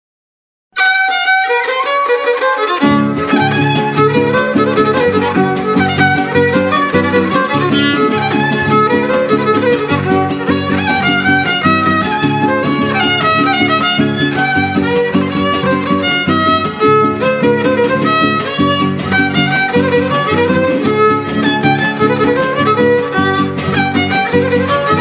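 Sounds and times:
strummed guitars: 0.8 - 25.0
violin melody: 0.8 - 25.0.

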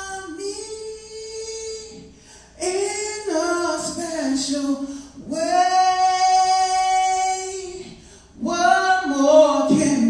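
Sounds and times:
man singing in a high voice: 0.0 - 10.0.

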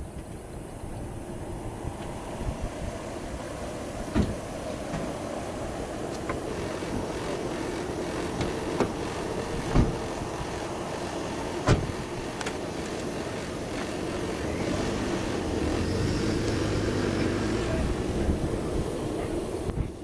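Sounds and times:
ambulance engine running: 1.5 - 20.0.

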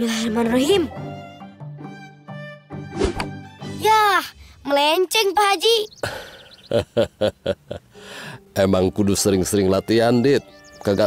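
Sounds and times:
background music with strings: 0.0 - 4.4, 7.4 - 11.0
arrow thunking into target: 2.9 - 3.4.

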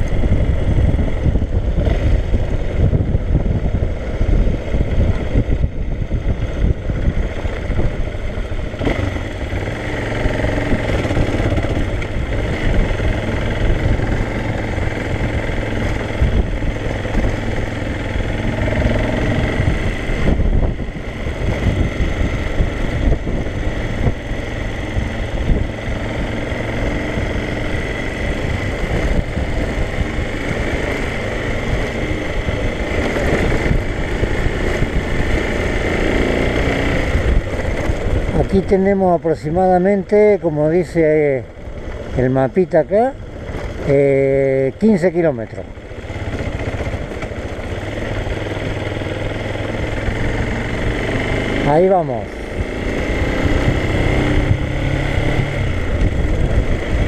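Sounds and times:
motorcycle engine running: 0.0 - 57.0
wind and road rumble: 0.0 - 57.0.

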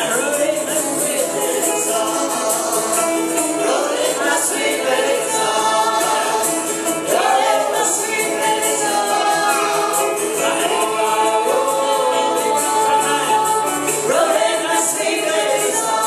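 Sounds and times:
picked banjo: 0.0 - 16.0
strummed acoustic guitar: 0.0 - 16.0
woman singing: 0.0 - 16.0.

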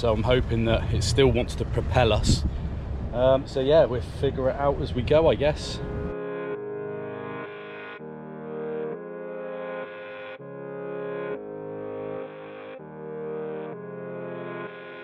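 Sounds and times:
soft synthesizer chords: 5.1 - 15.0.

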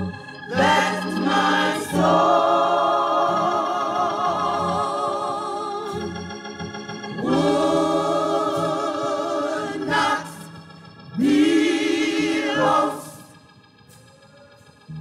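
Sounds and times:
gospel choir singing: 0.0 - 14.8
organ note: 0.0 - 15.0.

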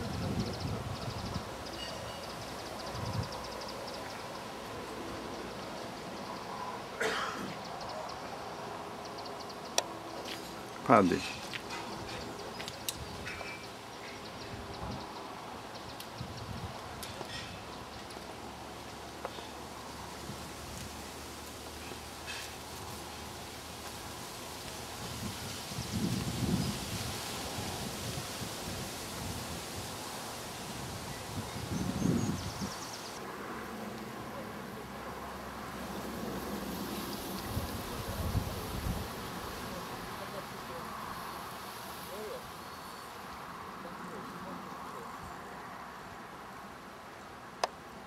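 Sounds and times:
steady background hiss: 0.0 - 48.0.

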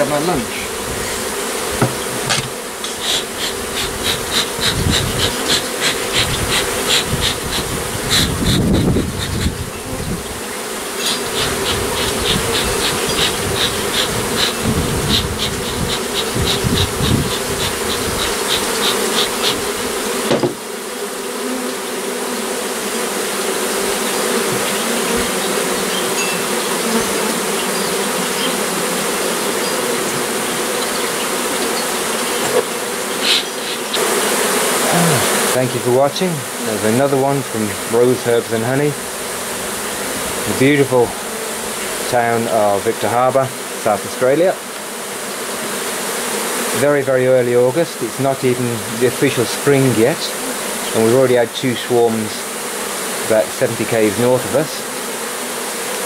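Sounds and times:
honeybees buzzing: 0.0 - 56.0.

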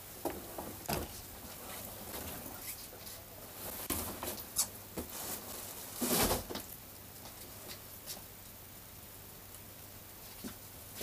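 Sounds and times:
soft rustling: 1.1 - 6.5.

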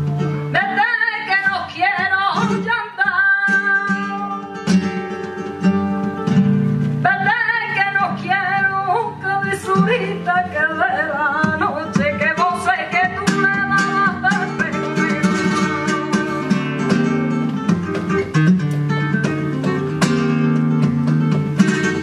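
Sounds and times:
flamenco guitar: 0.0 - 22.0
woman singing: 0.5 - 4.7, 7.0 - 16.6
hand claps: 17.4 - 18.9.

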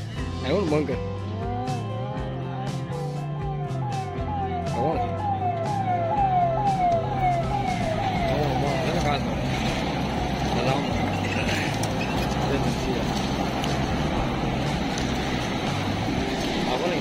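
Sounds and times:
cars passing close by: 0.6 - 17.0
whooping siren: 1.2 - 11.4.

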